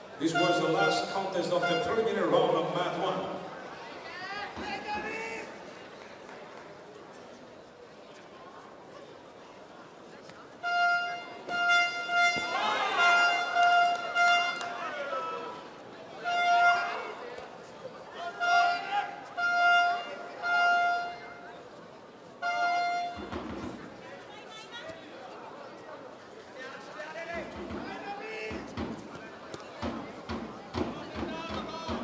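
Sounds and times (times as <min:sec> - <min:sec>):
horn tooting short blasts: 0:00.2 - 0:02.2, 0:10.6 - 0:14.8, 0:16.2 - 0:17.2, 0:18.4 - 0:21.4, 0:22.4 - 0:23.3
crowd shouting: 0:11.5 - 0:17.3.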